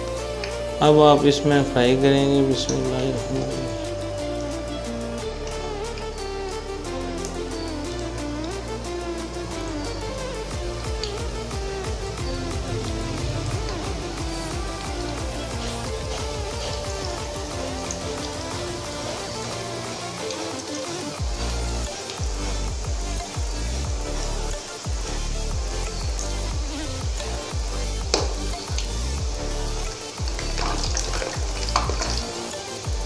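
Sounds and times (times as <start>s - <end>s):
background music with repeating bass: 0.0s - 33.0s
dough sizzling in hot oil: 2.7s - 33.0s.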